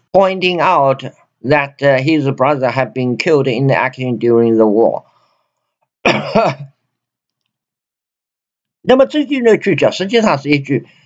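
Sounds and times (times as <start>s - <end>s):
man clearing throat: 6.0s - 6.8s.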